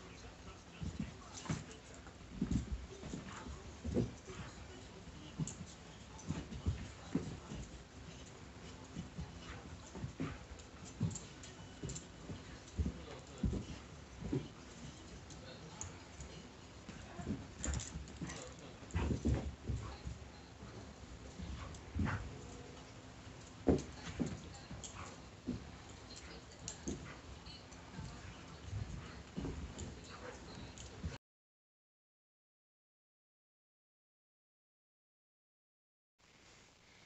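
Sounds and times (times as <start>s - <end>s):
dog playing with toy on carpet: 0.0s - 31.2s.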